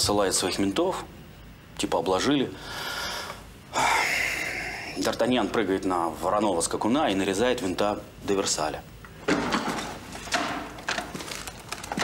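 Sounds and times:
plastic bag rustling: 9.7s - 12.0s.

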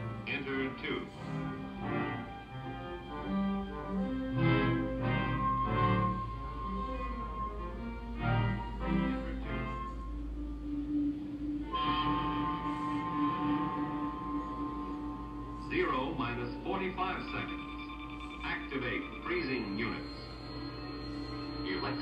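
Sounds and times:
orchestral bowed strings: 0.0s - 22.0s.

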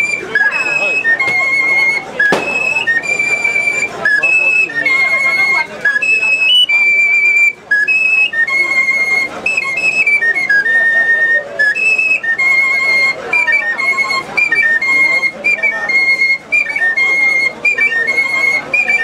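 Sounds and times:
man hand whistling tune: 0.0s - 19.0s.

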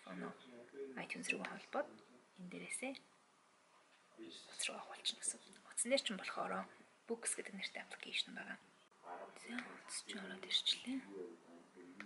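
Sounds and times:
woman speaking: 1.0s - 3.1s, 4.6s - 8.6s, 9.4s - 11.1s.

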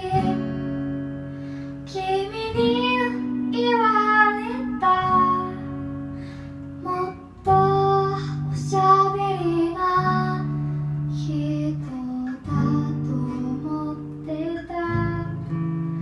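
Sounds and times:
woman singing: 0.0s - 1.1s, 1.8s - 15.7s
acoustic guitar strummed chords: 0.0s - 16.0s.

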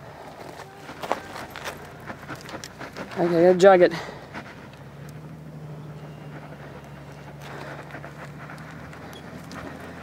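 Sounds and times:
footsteps on gravelly ground: 0.1s - 10.0s.

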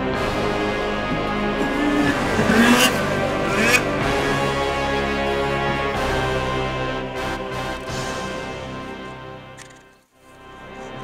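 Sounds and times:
background music: 0.0s - 11.0s
engine revving: 0.3s - 6.5s.

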